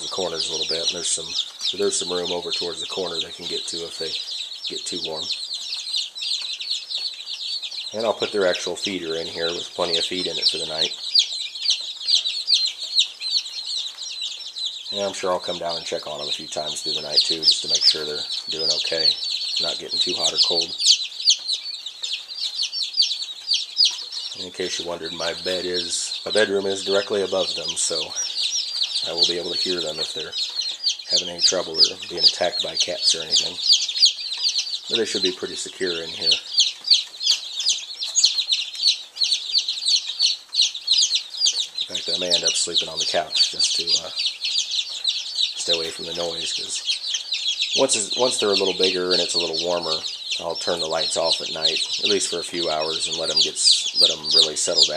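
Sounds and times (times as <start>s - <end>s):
chicks peeping: 0.0s - 54.9s.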